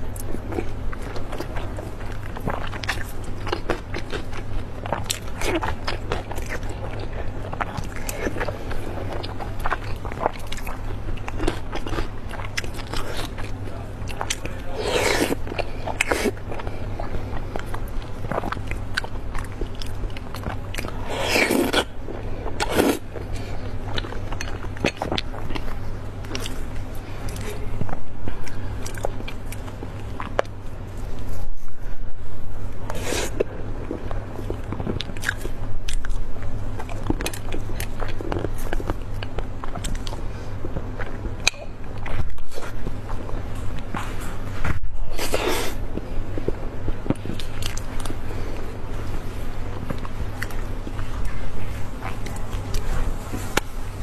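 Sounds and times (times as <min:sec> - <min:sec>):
chewing food: 0:00.0 - 0:54.0
low steady hum: 0:00.0 - 0:54.0.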